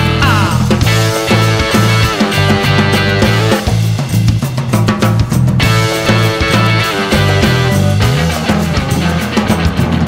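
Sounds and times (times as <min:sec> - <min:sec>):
drum hits: 0:00.0 - 0:10.0
guitar: 0:00.0 - 0:10.0
stepping bass line: 0:00.0 - 0:10.0.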